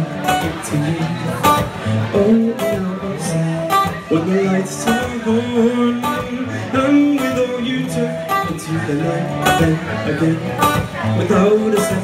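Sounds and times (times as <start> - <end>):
acoustic guitar strummed: 0.0 - 12.0.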